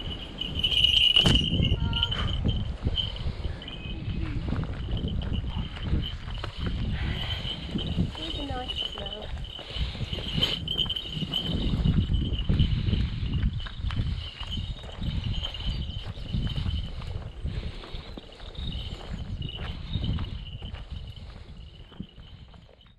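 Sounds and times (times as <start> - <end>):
low bumping microphone rumble: 0.0 - 17.6
footsteps on pavement: 0.0 - 22.9.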